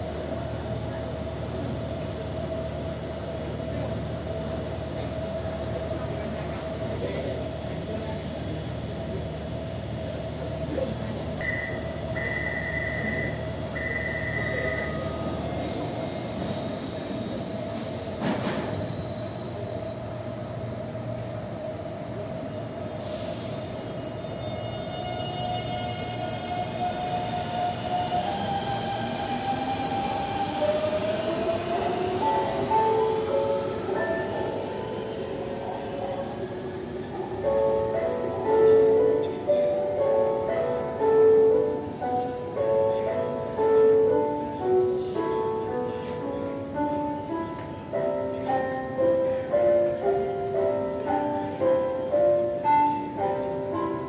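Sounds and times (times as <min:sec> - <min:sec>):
short high beeps: 0:11.4 - 0:15.1.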